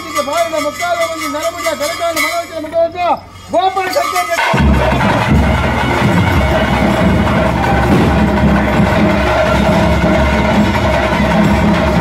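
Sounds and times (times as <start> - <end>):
held high tone: 0.0 - 11.5
drums beating steadily: 0.0 - 12.0.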